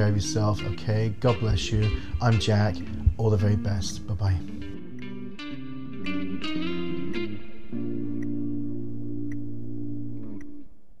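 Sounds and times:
held electric guitar chord: 0:00.0 - 0:10.7.

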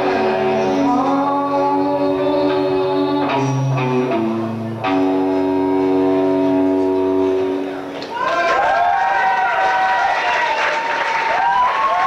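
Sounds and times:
sustained electric guitar chord: 0:01.6 - 0:07.8.

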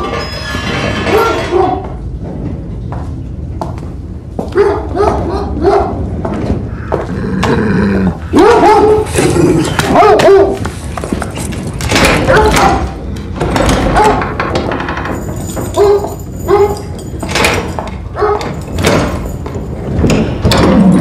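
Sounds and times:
guard dog barking: 0:04.6 - 0:06.0, 0:08.2 - 0:10.6, 0:15.8 - 0:16.9, 0:18.2 - 0:18.6
dog snarling: 0:07.0 - 0:10.3.

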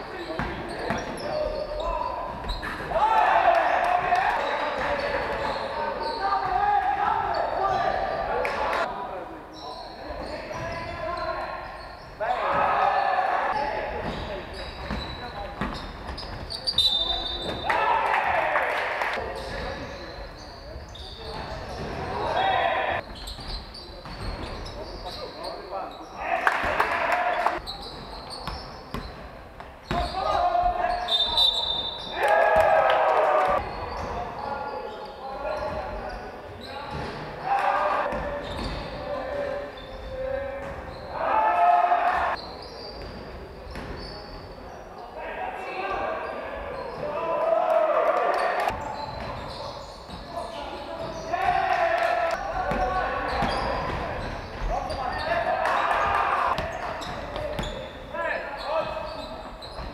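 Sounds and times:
basketball bouncing on wooden court: 0:00.3 - 0:02.8, 0:14.0 - 0:16.5, 0:27.8 - 0:29.2, 0:29.8 - 0:30.2, 0:52.4 - 0:55.0.

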